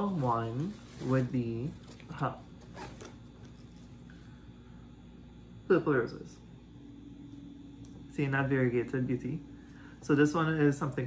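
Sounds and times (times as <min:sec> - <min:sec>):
rustling of leafy stem: 0:00.0 - 0:04.0.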